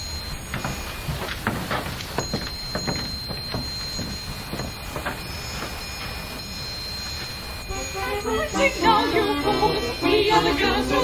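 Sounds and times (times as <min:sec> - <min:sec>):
voices singing: 0:07.5 - 0:11.0.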